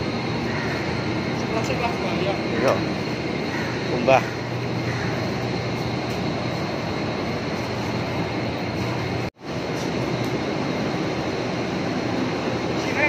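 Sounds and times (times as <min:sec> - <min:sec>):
low hum: 0:00.0 - 0:13.0
steady background rumble: 0:00.0 - 0:13.0.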